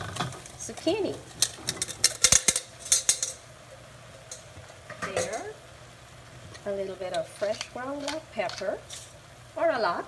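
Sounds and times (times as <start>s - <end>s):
vegetables clattering into a pan: 0.0s - 3.5s, 4.3s - 5.6s.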